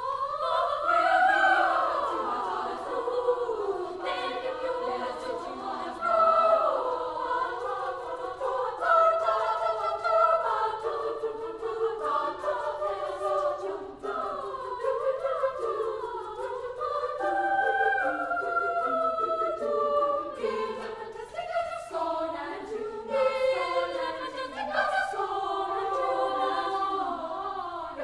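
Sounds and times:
girls' choir singing in parts: 0.0s - 28.0s.

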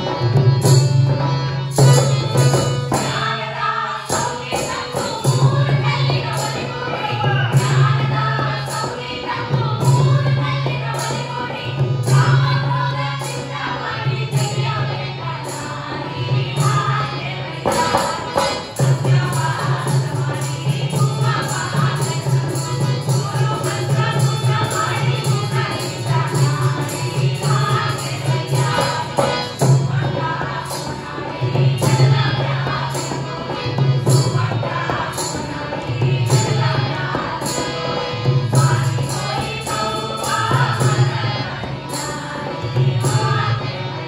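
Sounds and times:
group singing in unison: 0.0s - 44.0s
hand drums: 0.0s - 44.0s
harmonium: 0.0s - 44.0s.

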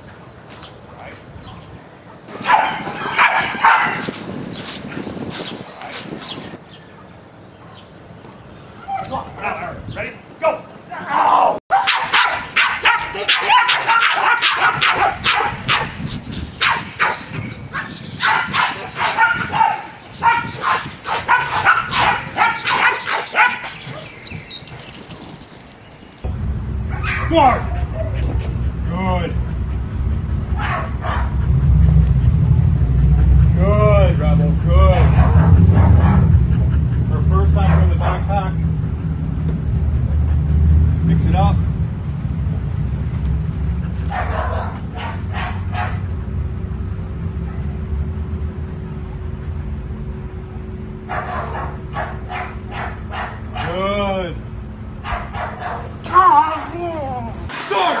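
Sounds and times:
dogs barking excitedly: 2.0s - 6.5s, 11.7s - 25.9s, 26.9s - 28.8s, 29.4s - 33.6s, 34.9s - 40.7s, 43.7s - 46.3s, 51.0s - 53.9s, 54.9s - 56.8s
steady low rumble: 26.2s - 56.0s.

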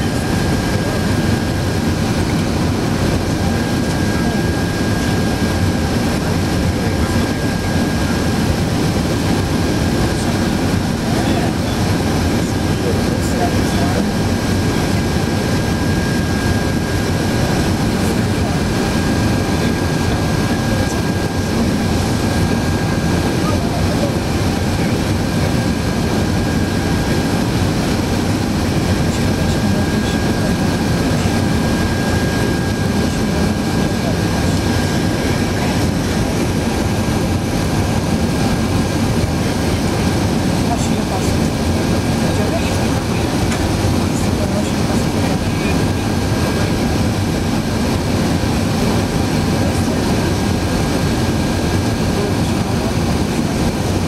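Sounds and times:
airplane cabin engine noise: 0.0s - 54.0s.

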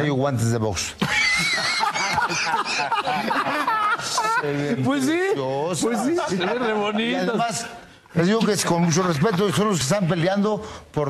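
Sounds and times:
people laughing: 1.0s - 10.2s
man speaking: 4.1s - 11.0s.

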